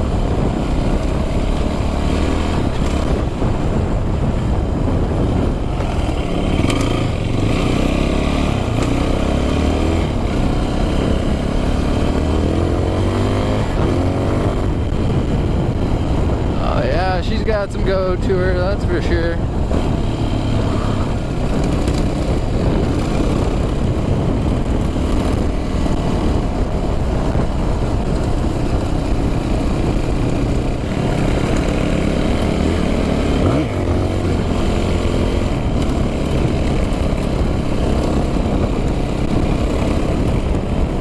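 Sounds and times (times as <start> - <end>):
dirt bike engine running: 0.0 - 41.0.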